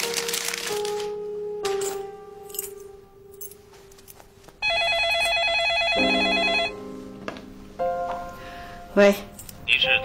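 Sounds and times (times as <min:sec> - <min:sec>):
telephone warbling ring: 0:04.6 - 0:06.8.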